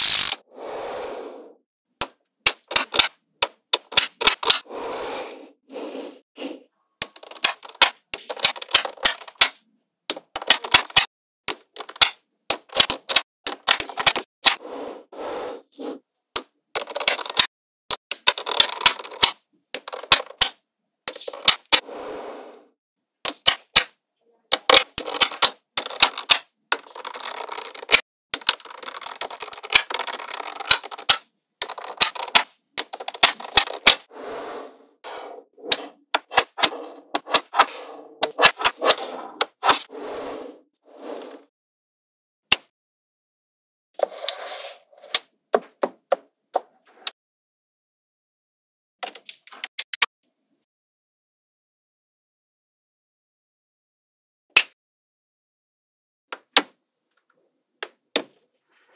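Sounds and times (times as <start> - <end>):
magnetic balls clicking together: 0.0 - 0.4, 24.5 - 34.1
magnetic balls rattling: 24.6 - 34.1.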